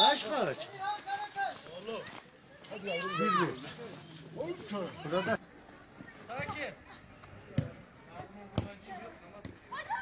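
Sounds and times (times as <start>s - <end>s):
football being kicked: 8.5s - 8.8s.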